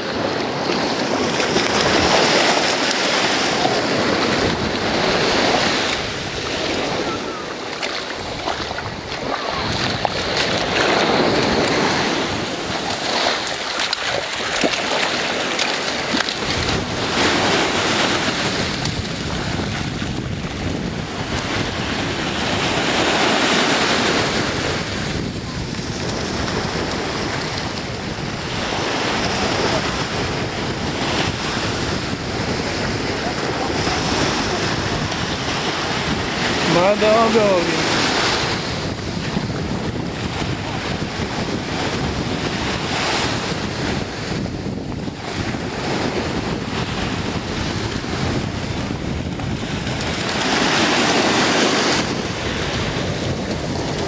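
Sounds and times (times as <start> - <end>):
ocean surf washing: 0.0 - 54.0
wind on microphone: 0.0 - 54.0.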